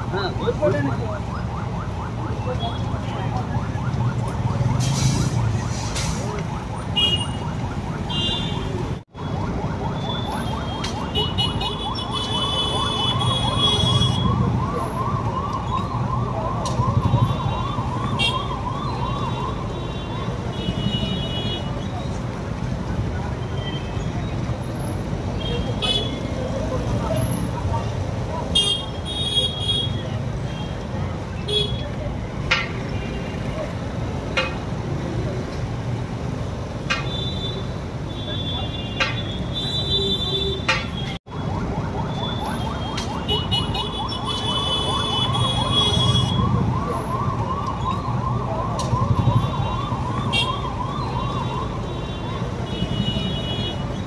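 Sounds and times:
voices: 0.0s - 9.0s, 9.9s - 54.0s
police siren sweeping: 0.0s - 36.8s, 41.2s - 54.0s
traffic: 0.0s - 54.0s.

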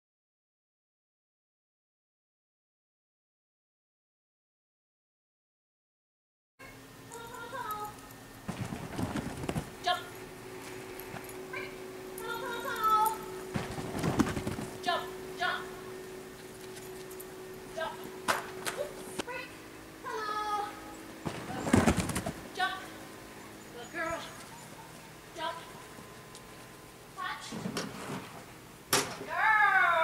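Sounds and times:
steady low hum: 6.6s - 30.0s
footfalls running on turf: 8.5s - 9.9s, 13.5s - 14.8s.

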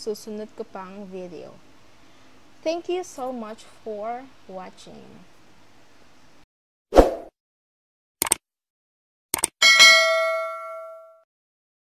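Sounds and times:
notification bell ding: 9.6s - 11.2s.

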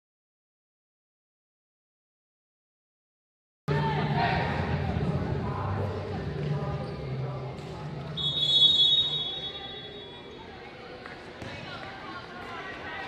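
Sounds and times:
referee's whistle blast: 8.2s - 10.1s.

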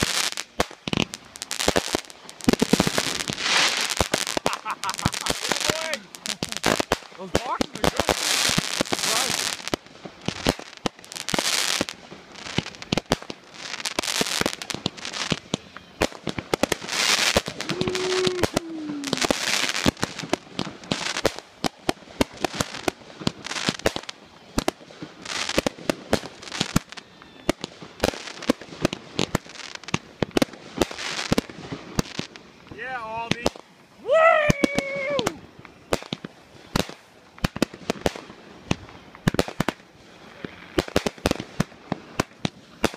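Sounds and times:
fireworks bursting and crackling: 0.0s - 42.9s.

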